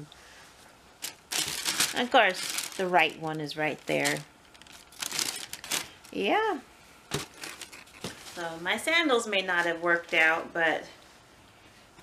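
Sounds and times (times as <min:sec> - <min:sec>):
tissue paper crinkling: 0:01.0 - 0:06.3, 0:07.1 - 0:08.8.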